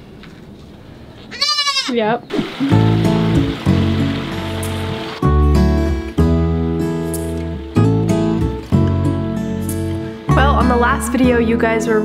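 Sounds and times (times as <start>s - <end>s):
goat bleating: 1.3s - 2.1s.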